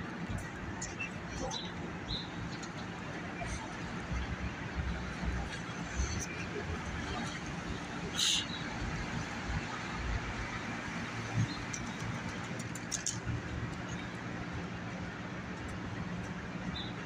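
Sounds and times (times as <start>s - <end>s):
city street traffic: 0.0s - 17.0s.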